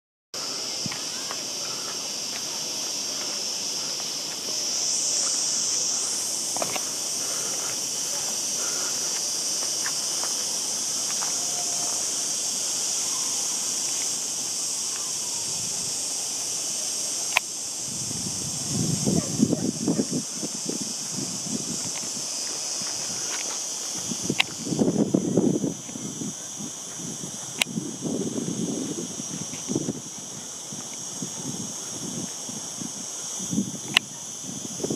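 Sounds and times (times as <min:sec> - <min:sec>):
insect chorus hiss: 0:00.4 - 0:34.9.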